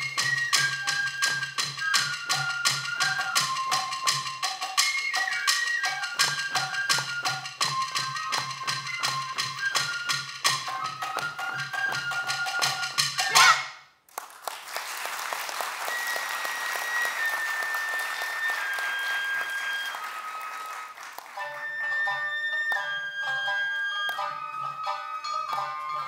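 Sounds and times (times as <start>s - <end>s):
bamboo flute: 0.0s - 13.8s, 15.9s - 26.0s.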